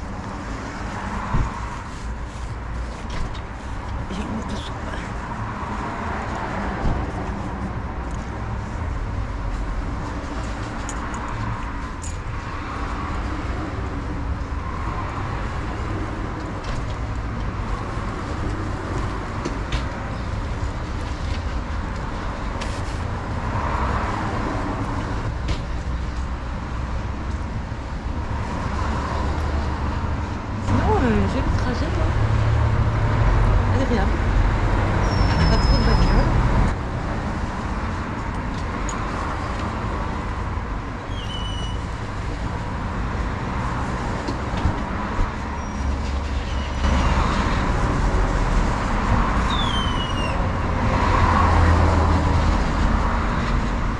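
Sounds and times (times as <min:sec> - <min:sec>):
road traffic noise: 0:00.0 - 0:53.9.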